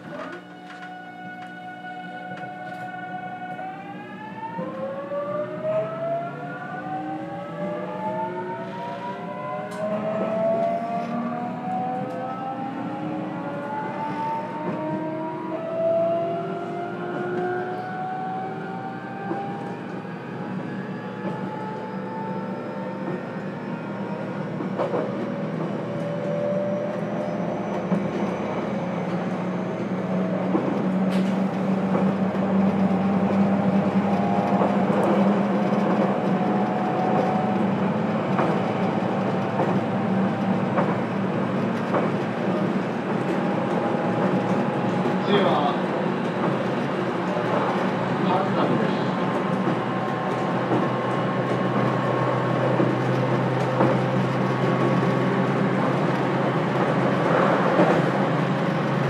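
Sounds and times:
wheels running on track: 13.0s - 59.0s.

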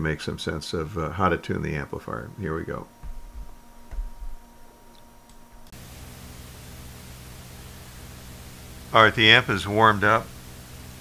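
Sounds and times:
amplifier hiss and hum: 0.0s - 11.0s
cooling blower running: 5.3s - 11.0s.

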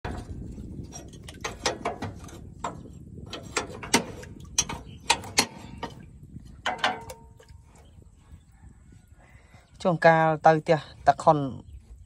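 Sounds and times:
metal clicks and clanks: 0.0s - 6.0s, 6.6s - 7.5s.

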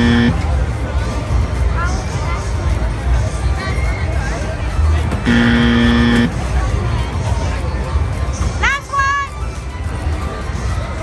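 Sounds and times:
electronic buzzer tone: 0.0s - 0.4s, 5.3s - 6.4s
fairground music: 0.0s - 0.6s, 5.1s - 6.7s
crowd chatter: 0.0s - 11.0s.

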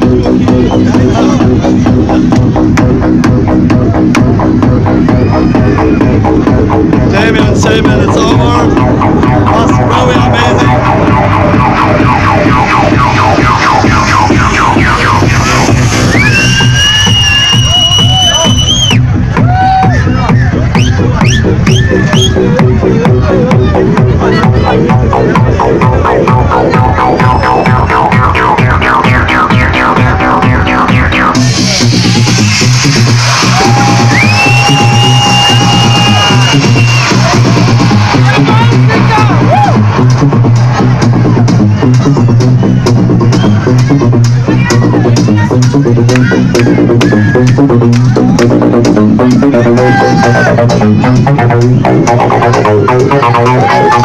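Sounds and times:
electronic dance music: 0.0s - 54.0s
techno over club sound system: 0.0s - 54.0s
high siren-like synth tone: 10.6s - 15.7s.

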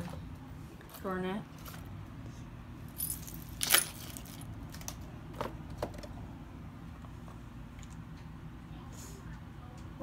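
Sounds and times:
small metal objects jingling: 2.9s - 4.5s.

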